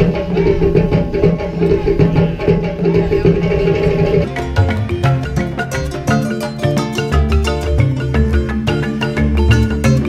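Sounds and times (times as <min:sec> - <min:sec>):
drums: 0:00.0 - 0:10.0
plucked strings: 0:04.2 - 0:10.0.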